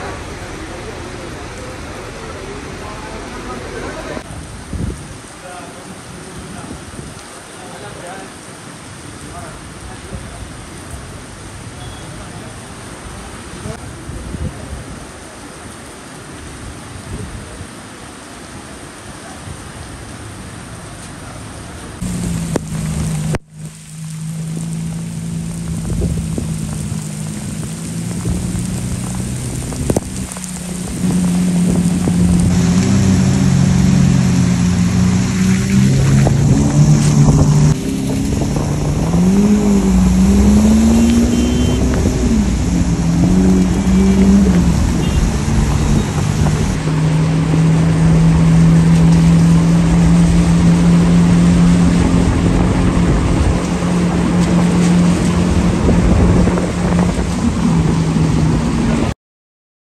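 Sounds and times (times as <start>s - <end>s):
rain: 0.0s - 59.2s
road noise: 0.0s - 59.2s
car engine revving: 22.0s - 59.1s.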